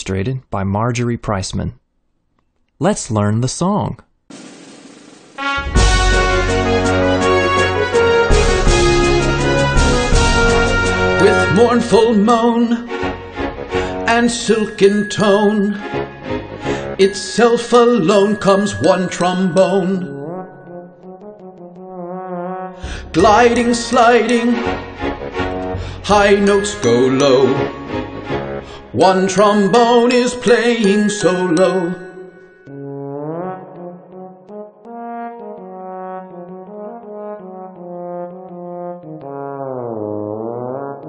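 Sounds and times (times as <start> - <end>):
trombone holding long note: 5.4 - 11.6, 21.0 - 26.4, 32.7 - 41.0
instrumental backing music: 5.4 - 39.5.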